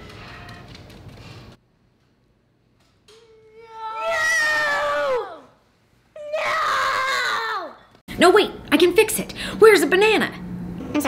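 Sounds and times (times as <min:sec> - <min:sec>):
children screaming: 0:03.4 - 0:05.6, 0:06.2 - 0:07.9.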